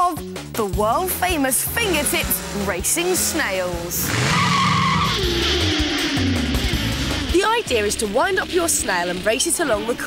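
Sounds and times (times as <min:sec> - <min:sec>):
background music: 0:00.0 - 0:10.0
race car engine passing: 0:01.8 - 0:10.0
tyre screech: 0:04.0 - 0:07.3.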